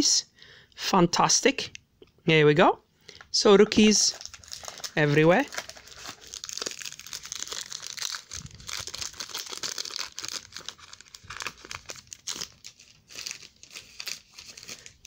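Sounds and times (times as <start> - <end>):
foil wrapper crinkling: 3.8 - 15.0.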